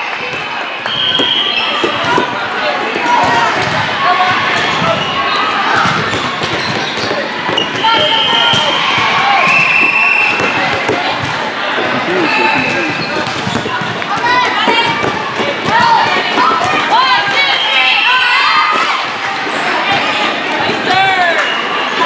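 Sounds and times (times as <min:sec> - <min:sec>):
voices echoing in a hall: 0:00.0 - 0:22.0
volleyball being struck and bouncing: 0:00.3 - 0:05.0, 0:05.8 - 0:11.9, 0:12.5 - 0:16.8.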